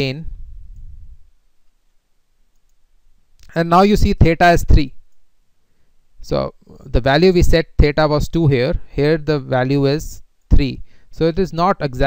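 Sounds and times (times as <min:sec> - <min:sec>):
computer mouse clicks: 0:02.5 - 0:02.8.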